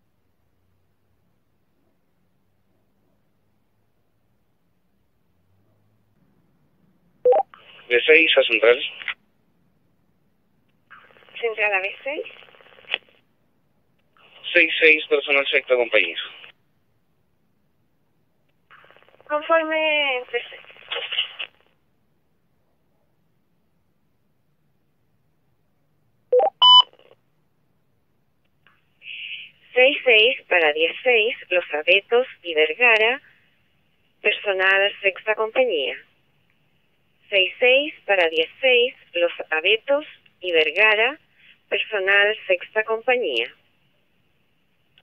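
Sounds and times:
radio channel hiss: 0:07.3 - 0:09.2, 0:10.9 - 0:13.1, 0:14.2 - 0:16.6, 0:18.7 - 0:21.6, 0:29.0 - 0:33.4
rising electronic radio beeps: 0:26.4 - 0:26.8
person speaking: 0:29.0 - 0:33.2.

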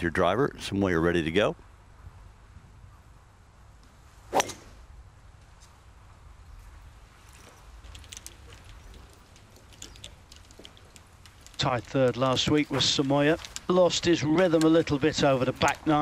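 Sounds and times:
faint outdoor ambience: 0:00.0 - 0:16.0
golf club striking ball: 0:04.3 - 0:04.8.

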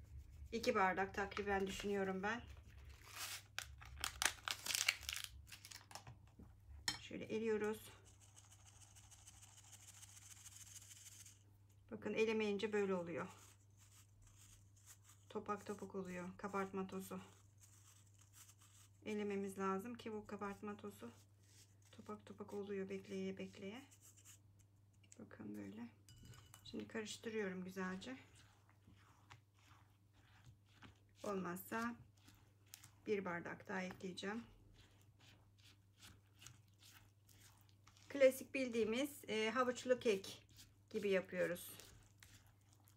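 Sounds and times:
spatula stirring batter in bowl: 0:00.0 - 0:03.0, 0:06.1 - 0:42.9
flour sifting through metal sieve: 0:07.4 - 0:42.9.

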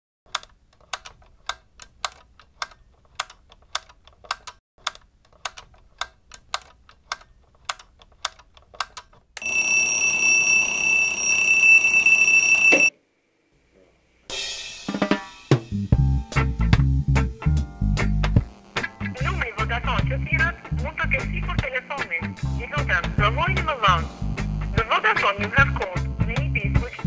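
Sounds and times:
alarm clock ticking: 0:09.4 - 0:12.9
high-pitched electronic alarm tone: 0:09.4 - 0:12.9.

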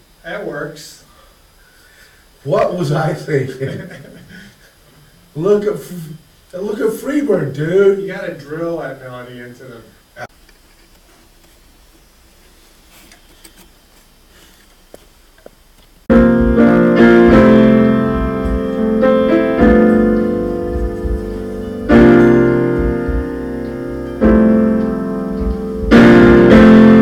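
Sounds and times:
piano chords: 0:16.1 - 0:27.0.

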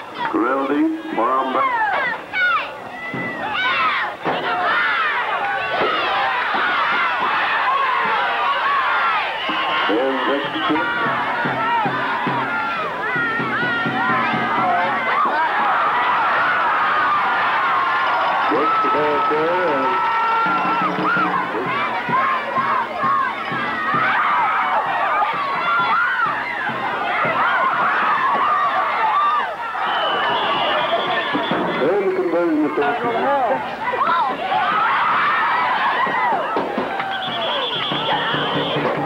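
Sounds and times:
crowd cheering and shouting: 0:00.0 - 0:39.0.

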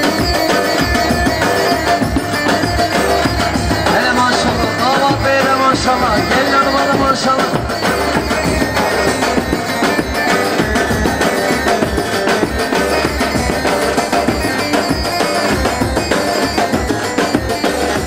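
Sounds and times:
busy drum beat: 0:00.0 - 0:18.0
folk dance music by live band: 0:00.0 - 0:18.0.

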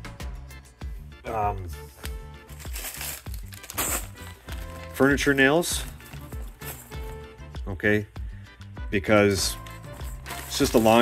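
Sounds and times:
music with steady beat: 0:00.0 - 0:11.0
plastic bag crinkling: 0:02.5 - 0:07.1, 0:09.7 - 0:11.0.

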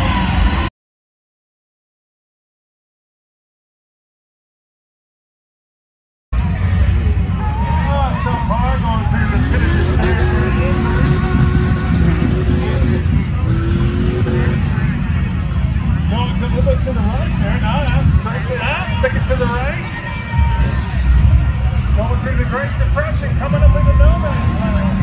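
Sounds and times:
crowd voices: 0:00.0 - 0:00.7, 0:06.4 - 0:25.0
truck engine rumbling: 0:06.4 - 0:25.0.

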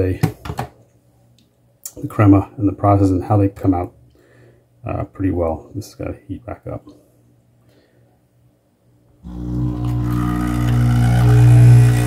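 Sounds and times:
man speaking: 0:00.0 - 0:00.3, 0:04.8 - 0:06.9.

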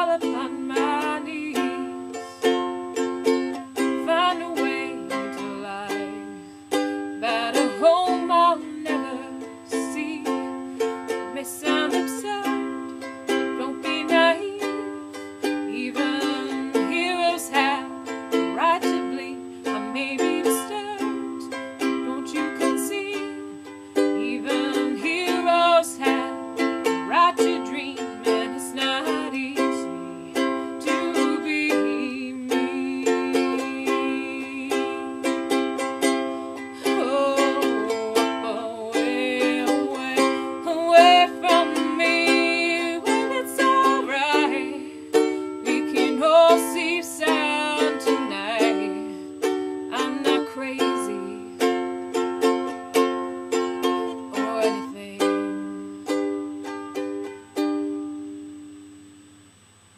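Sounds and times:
ukulele strumming: 0:00.0 - 0:59.4.

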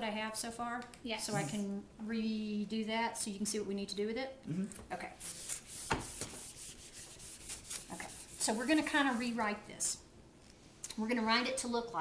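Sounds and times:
eraser wiping whiteboard: 0:05.2 - 0:09.5.

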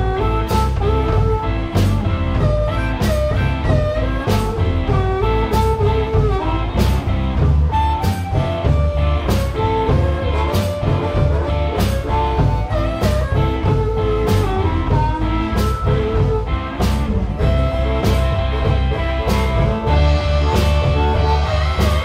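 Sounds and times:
blues-rock band playing: 0:00.0 - 0:22.0
drum and cymbal accents: 0:00.0 - 0:22.0
harmonica bending notes: 0:00.0 - 0:22.0.

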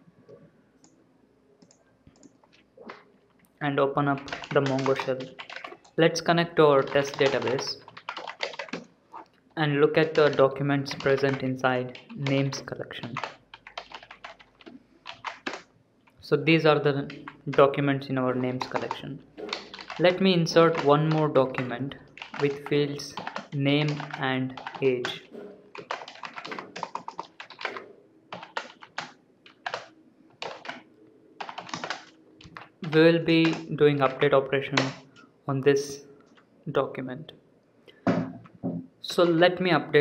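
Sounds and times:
typing on computer keyboard: 0:04.1 - 0:06.0, 0:06.8 - 0:08.9, 0:10.0 - 0:15.7, 0:18.4 - 0:35.1.

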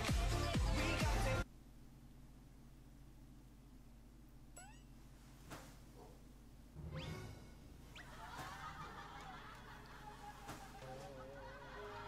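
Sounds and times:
low steady hum: 0:01.4 - 0:12.0.

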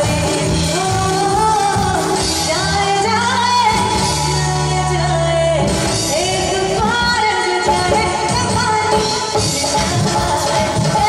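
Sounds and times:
live band playing: 0:00.0 - 0:11.0
woman singing into microphone: 0:00.0 - 0:11.0.

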